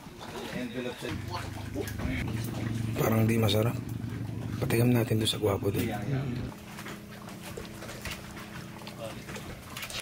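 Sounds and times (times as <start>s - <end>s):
low mechanical hum: 1.1s - 10.0s.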